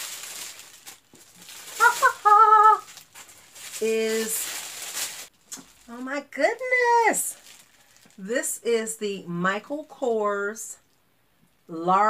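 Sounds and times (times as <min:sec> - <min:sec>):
woman squealing: 0:01.7 - 0:02.9.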